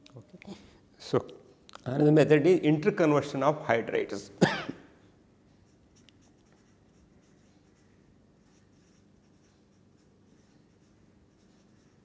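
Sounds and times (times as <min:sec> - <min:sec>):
marker scratching on paper: 0:05.6 - 0:12.0.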